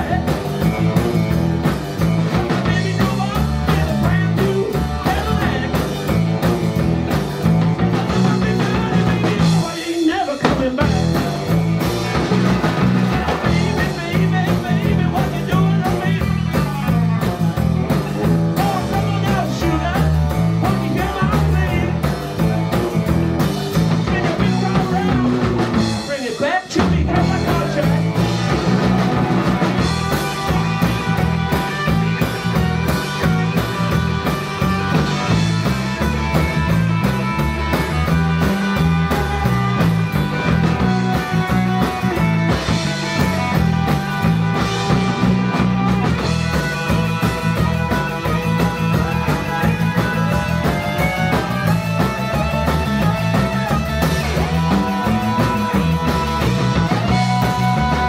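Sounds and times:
drum kit: 0.0s - 58.0s
electric guitar: 0.0s - 58.0s
repeating bass guitar line: 0.0s - 58.0s.

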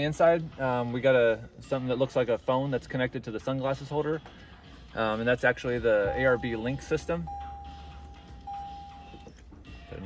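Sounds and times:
dashboard warning chime: 5.8s - 10.0s.

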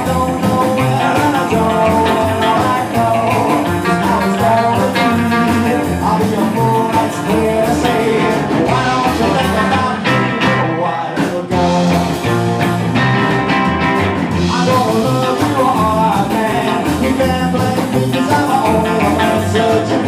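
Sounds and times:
rock and roll band playing: 0.0s - 20.0s.

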